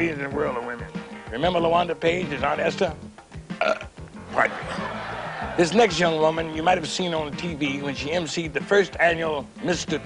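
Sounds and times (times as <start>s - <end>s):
music playing: 0.0s - 10.0s
man's throaty vocal noises: 3.6s - 4.0s.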